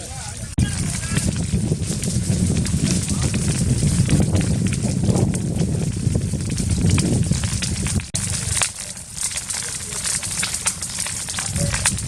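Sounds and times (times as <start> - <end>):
fire crackling and popping: 0.0 - 12.0
low fire rumble: 0.0 - 12.0.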